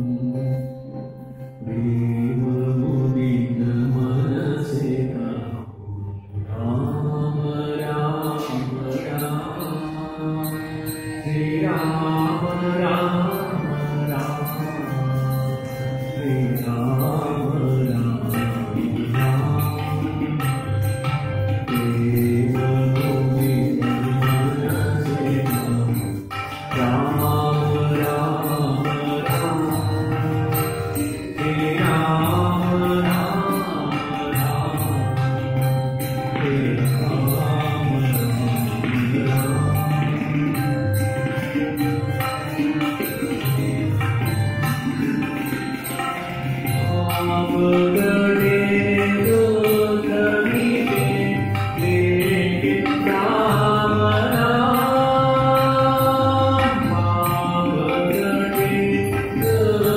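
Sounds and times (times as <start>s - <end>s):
man singing devotional song: 0.0s - 59.9s
tabla: 0.0s - 59.9s
harmonium chords: 6.0s - 59.9s.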